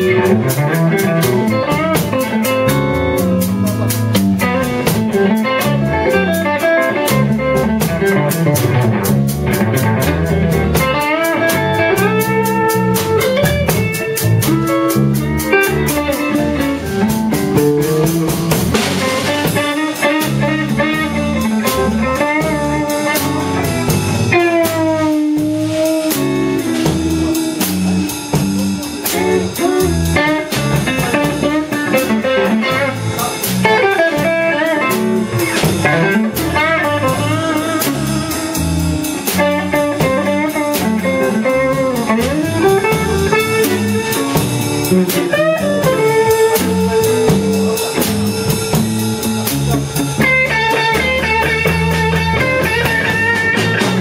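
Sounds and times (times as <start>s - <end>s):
lead guitar with bent notes: 0.0s - 54.0s
live blues band playing: 0.0s - 54.0s.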